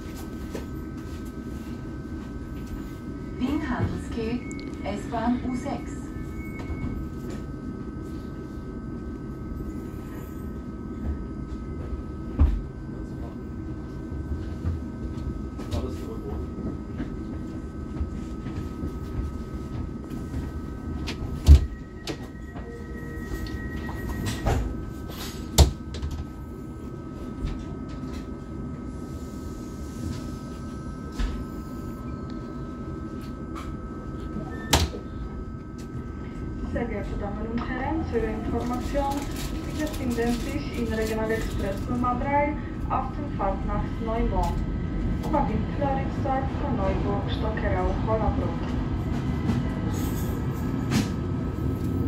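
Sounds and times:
train hum: 0:00.0 - 0:52.0.

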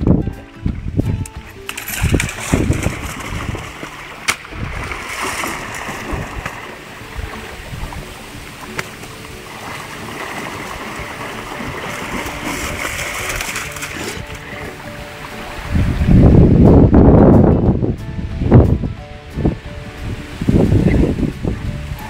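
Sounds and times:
wind and handling on microphone: 0:00.0 - 0:22.0
water sloshing and splashing: 0:00.6 - 0:15.8.

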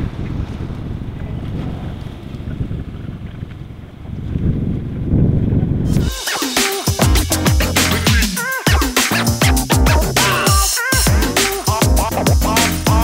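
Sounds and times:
wind buffeting microphone: 0:00.0 - 0:06.1.

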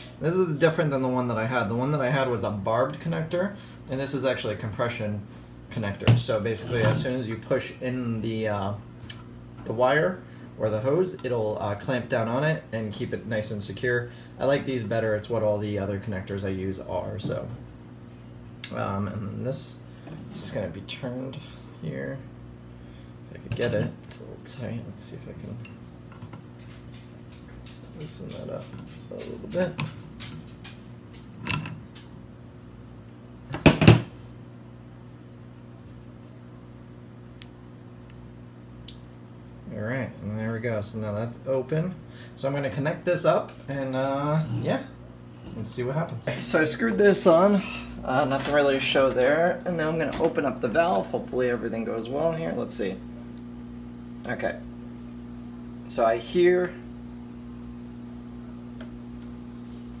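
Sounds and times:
low steady hum: 0:00.0 - 1:00.0
faint hiss: 0:51.3 - 1:00.0.

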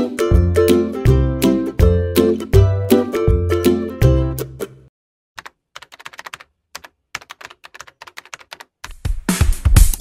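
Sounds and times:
keyboard typing: 0:05.4 - 0:09.1.

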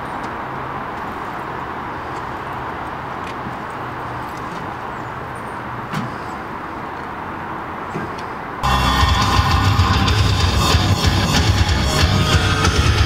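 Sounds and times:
traffic noise: 0:00.0 - 0:13.0.

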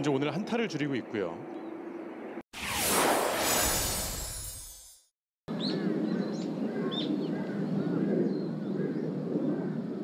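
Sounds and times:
birds chirping: 0:00.0 - 0:02.4.

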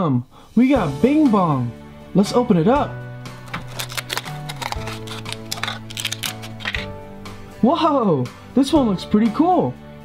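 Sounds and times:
background music: 0:00.0 - 0:10.0
stiff plastic crackling: 0:03.4 - 0:06.9.

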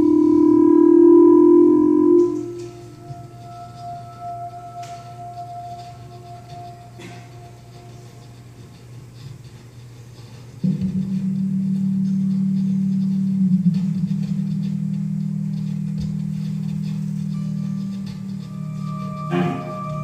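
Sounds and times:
low amplified drone: 0:00.0 - 0:09.6, 0:10.4 - 0:20.0.

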